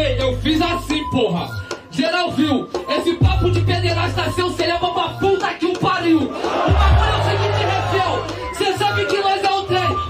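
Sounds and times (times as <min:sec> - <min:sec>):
deep bass beat: 0:00.0 - 0:01.2, 0:02.8 - 0:08.9
person rapping into microphone: 0:00.0 - 0:10.0.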